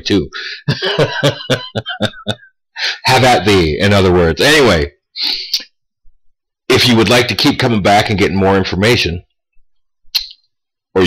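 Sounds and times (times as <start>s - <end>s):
man laughing: 0.4s - 3.0s.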